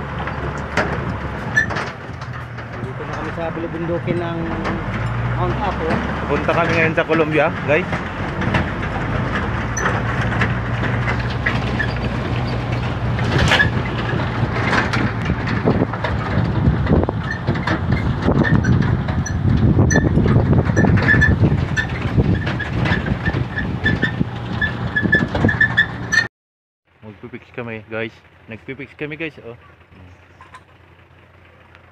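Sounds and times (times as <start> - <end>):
ladders and gear rattling: 0.0 - 26.3
truck engine and road drone: 0.0 - 26.3, 26.9 - 31.9.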